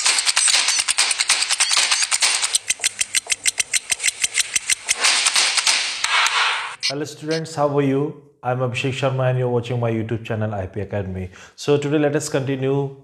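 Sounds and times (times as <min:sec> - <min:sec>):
fast percussive ticks: 0:00.0 - 0:06.9
person speaking: 0:06.8 - 0:09.0.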